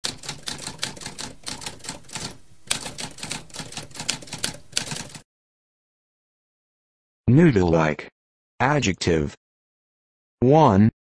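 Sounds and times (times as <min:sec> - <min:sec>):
typewriter keys clacking: 0:00.0 - 0:05.2.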